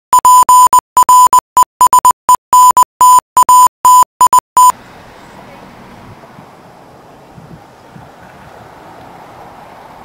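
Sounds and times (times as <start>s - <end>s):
morse code beeps: 0.1s - 4.7s.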